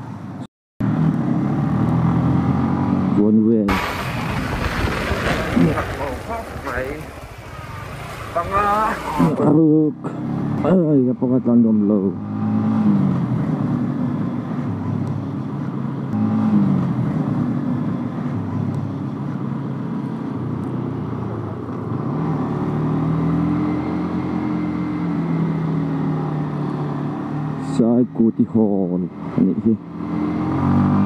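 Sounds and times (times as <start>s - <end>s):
motorcycle engine running: 16.1s - 19.6s.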